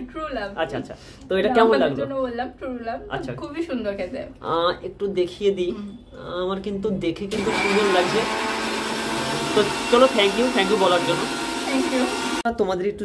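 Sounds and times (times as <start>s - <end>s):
small electric motor whirring: 7.4s - 12.4s.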